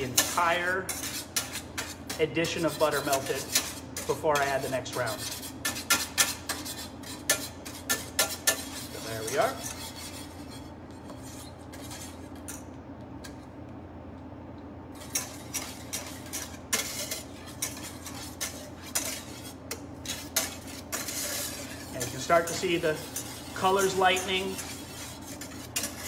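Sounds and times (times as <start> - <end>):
wire whisk scraping metal saucepan: 0.0 - 13.4, 15.0 - 26.0.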